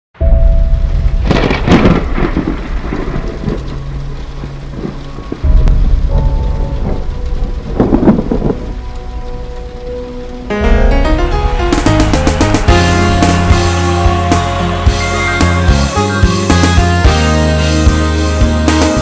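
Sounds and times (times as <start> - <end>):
deep thunder-like boom: 0.2 - 9.0, 10.5 - 15.8
rushing whooshes: 10.6 - 16.5.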